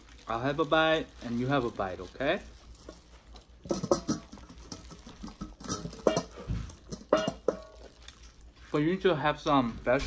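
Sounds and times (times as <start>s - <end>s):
gloved hands tearing meat: 0.0s - 3.6s, 6.8s - 8.6s.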